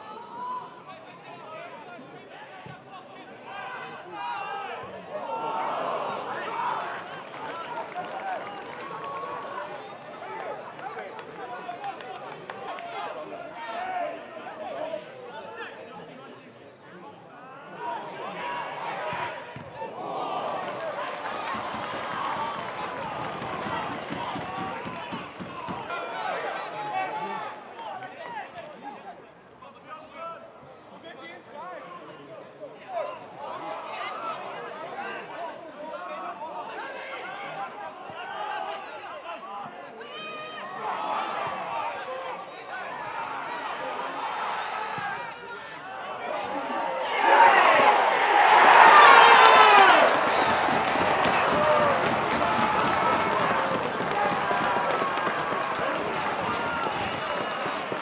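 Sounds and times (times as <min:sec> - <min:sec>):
crowd noise: 0:00.0 - 0:58.0
players shouting: 0:03.9 - 0:10.7, 0:18.0 - 0:28.3, 0:40.3 - 0:58.0.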